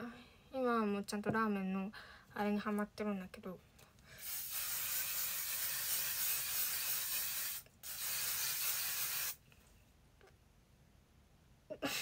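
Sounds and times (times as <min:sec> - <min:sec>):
hairspray spraying: 0:04.2 - 0:09.4.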